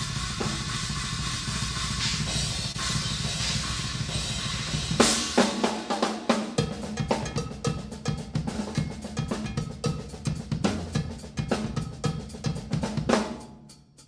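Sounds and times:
drum kit playing: 0.0 - 14.0.

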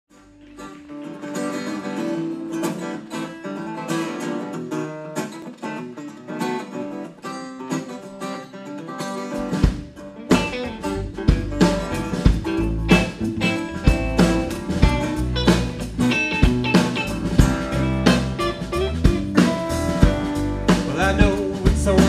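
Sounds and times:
bass guitar: 0.1 - 4.8, 9.3 - 22.0
acoustic guitar strummed and picked: 0.1 - 22.0
drums: 0.1 - 22.0.

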